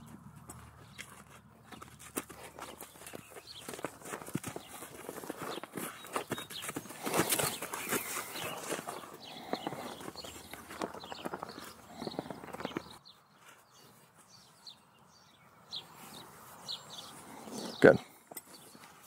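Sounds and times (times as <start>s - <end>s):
horse hooves in sand: 0.0s - 19.0s.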